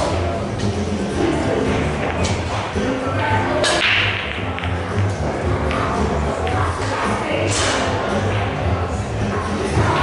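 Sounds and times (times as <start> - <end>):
pool cue striking ball: 3.6 - 8.8.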